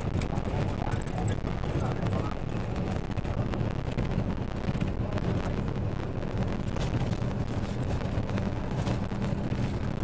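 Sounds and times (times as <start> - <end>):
vehicle rumbling on dirt road: 0.0 - 10.0.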